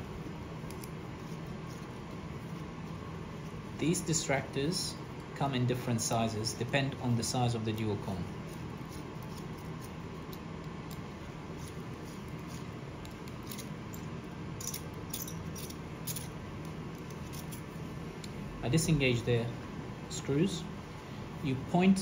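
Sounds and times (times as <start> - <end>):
steady low hum: 0.0 - 22.0
allen key clicking in screws: 14.6 - 17.6.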